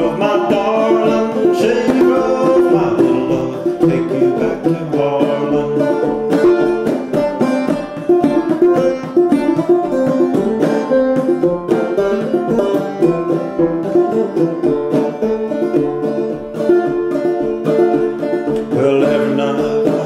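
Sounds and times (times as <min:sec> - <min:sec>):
banjo picking and strumming: 0:00.0 - 0:20.0.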